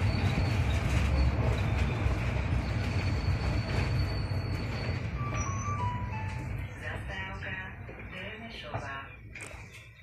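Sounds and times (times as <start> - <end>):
bus low rumble: 0.0 - 10.0.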